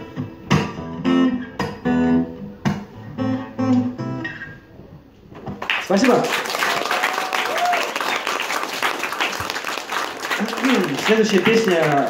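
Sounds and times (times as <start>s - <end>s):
acoustic guitar strummed: 0.0s - 4.7s
audience applause: 5.6s - 12.0s.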